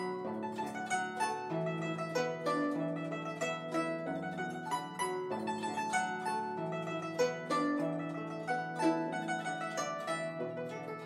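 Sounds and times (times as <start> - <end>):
guzheng plucked notes: 0.0 - 11.0.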